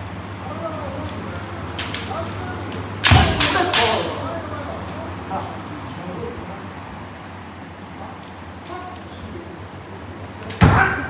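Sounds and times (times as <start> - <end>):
faint voices: 0.3 - 7.1
bamboo sword cracking on armour: 3.0 - 4.2.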